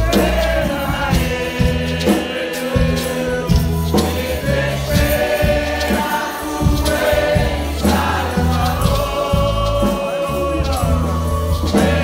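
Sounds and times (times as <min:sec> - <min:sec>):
bass and percussion: 0:00.0 - 0:12.0
congregation singing: 0:00.0 - 0:12.0.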